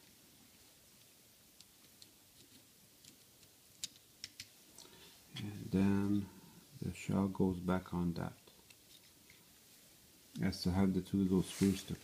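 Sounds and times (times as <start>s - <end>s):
small plastic clicks: 1.6s - 4.5s.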